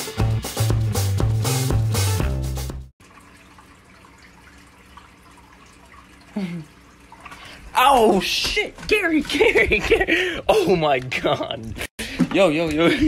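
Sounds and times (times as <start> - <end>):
music with drum beat: 0.0 - 2.9
aquarium filter trickling water: 3.0 - 9.6.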